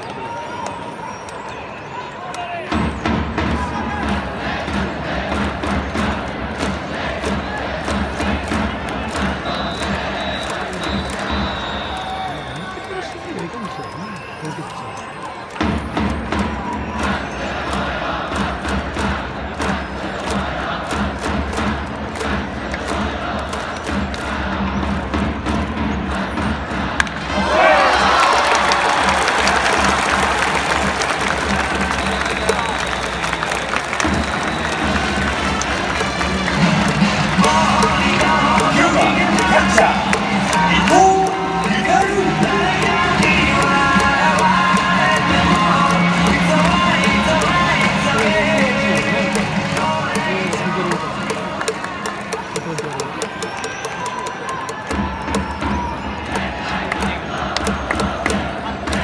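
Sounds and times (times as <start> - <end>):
stadium crowd cheering: 0.0 - 59.0
cheering-section melody: 27.2 - 59.0
sharp regular beats: 34.0 - 59.0.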